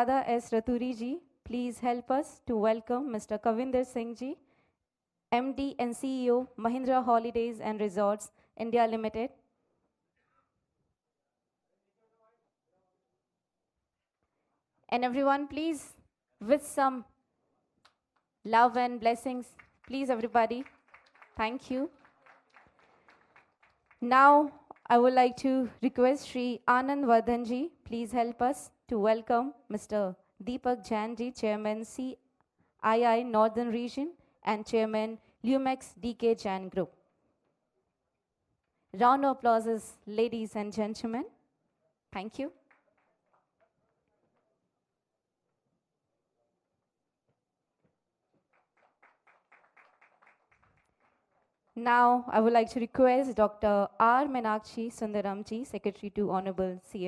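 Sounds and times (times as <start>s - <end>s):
audience clapping: 19.5s - 25.0s, 48.3s - 51.8s.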